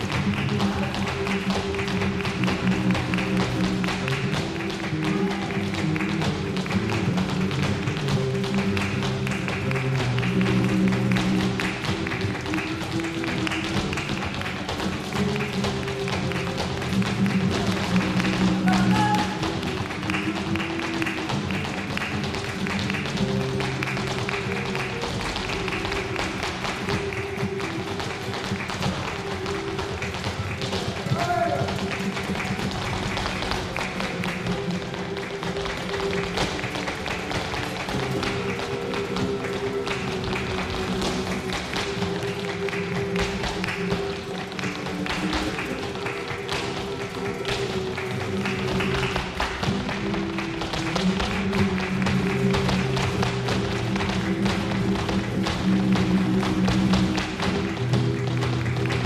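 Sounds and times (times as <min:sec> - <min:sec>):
flamenco guitars playing: 0:00.0 - 0:59.0
rhythmic hand clapping: 0:00.0 - 0:59.0.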